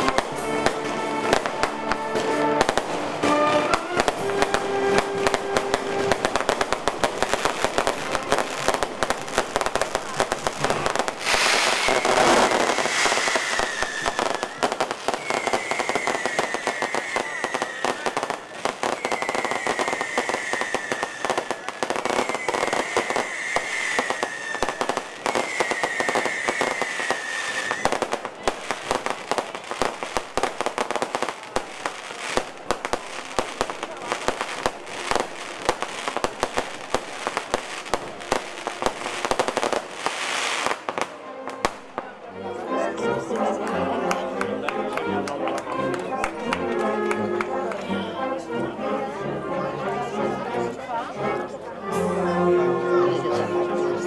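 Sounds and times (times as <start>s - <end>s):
fireworks crackling and banging: 0.0s - 42.2s, 43.0s - 48.0s
falling firework whistle: 11.2s - 28.2s.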